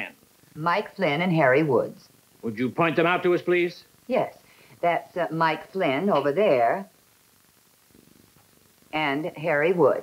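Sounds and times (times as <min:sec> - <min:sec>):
soundtrack hiss: 0:00.0 - 0:10.0
person speaking: 0:05.8 - 0:06.8.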